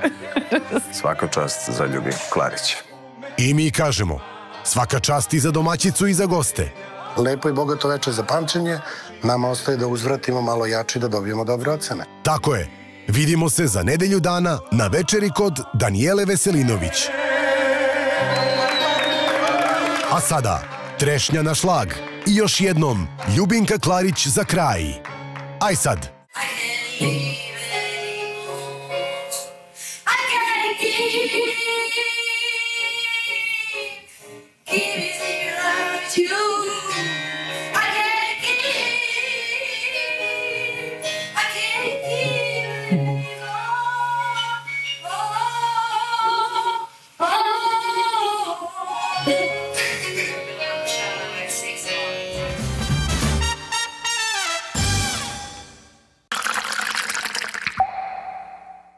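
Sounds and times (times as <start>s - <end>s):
liquid bubbling and pouring: 56.3s - 58.0s.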